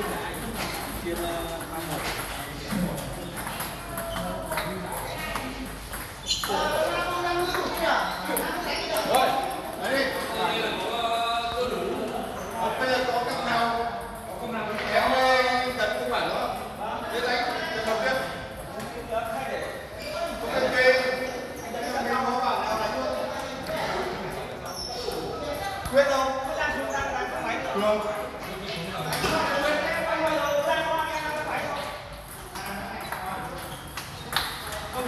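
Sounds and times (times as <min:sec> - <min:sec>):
table tennis balls clicking: 0:00.0 - 0:10.4, 0:31.6 - 0:35.0
hubbub of men's voices: 0:00.0 - 0:35.0
people talking in a large hall: 0:00.0 - 0:35.0.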